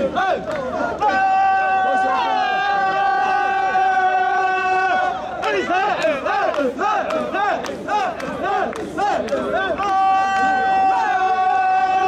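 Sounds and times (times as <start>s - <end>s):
men chanting in unison: 2.8s - 12.0s.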